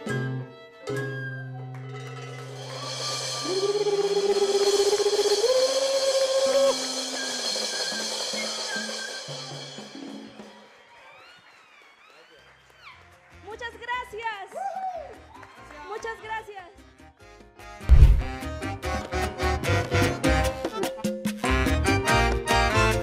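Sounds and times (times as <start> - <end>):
ringing cymbals: 2.2 - 10.5
voice singing high note: 3.2 - 7.1
salsa band final chord: 17.9 - 20.7.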